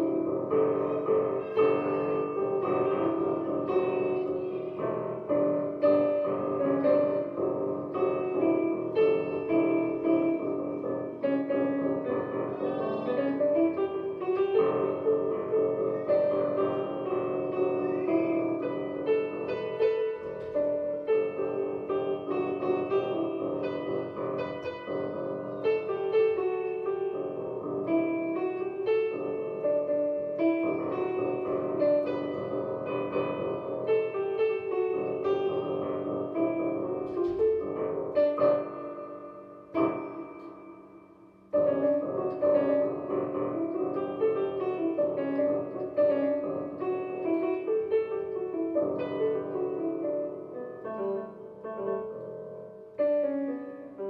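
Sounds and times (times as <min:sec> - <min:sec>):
digital piano melody over chords: 0:00.0 - 0:54.0.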